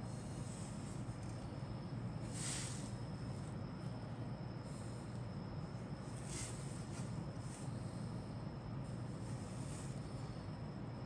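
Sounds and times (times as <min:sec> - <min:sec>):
faint high whine: 0:00.0 - 0:11.0
steady low hum: 0:00.0 - 0:11.0.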